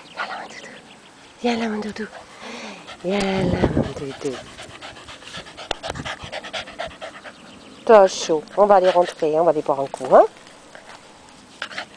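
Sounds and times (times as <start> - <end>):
dog panting: 2.0 - 10.0.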